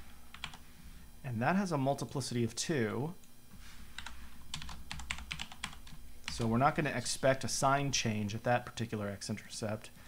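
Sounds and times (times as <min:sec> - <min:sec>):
computer keyboard typing: 0:00.3 - 0:00.6, 0:04.0 - 0:06.5.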